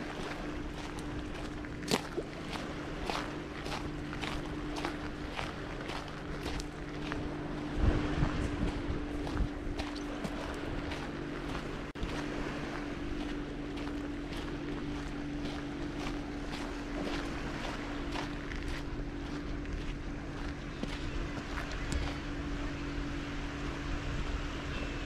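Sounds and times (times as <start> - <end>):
footsteps crunching on sand: 0.0 - 22.6
steady low hum: 0.0 - 25.0.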